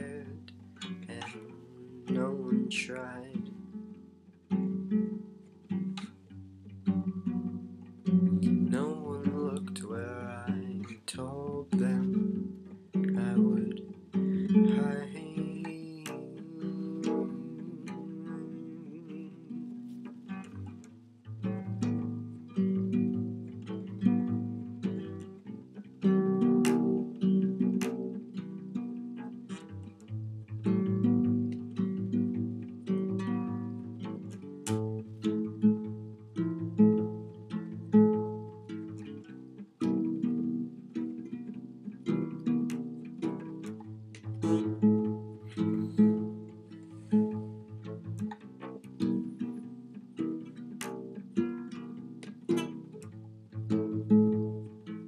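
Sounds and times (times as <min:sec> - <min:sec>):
acoustic guitar chords: 0:00.0 - 0:55.0.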